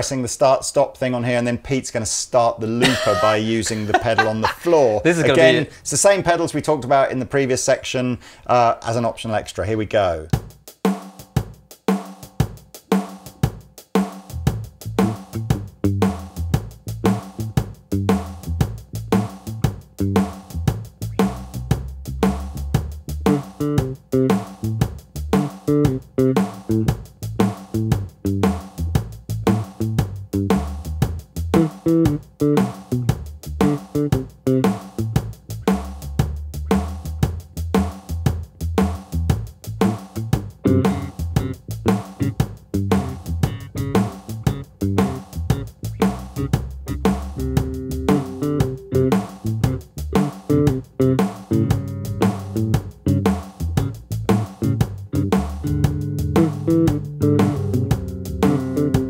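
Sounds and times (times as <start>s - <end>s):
drum machine beat: 2.8s - 5.7s, 10.3s - 59.0s
electric bass: 14.3s - 59.0s.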